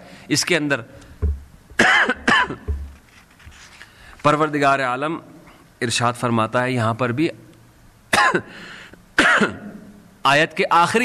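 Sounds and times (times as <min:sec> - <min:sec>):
man clearing his throat: 0:01.8 - 0:02.7, 0:08.1 - 0:08.5, 0:09.2 - 0:09.8.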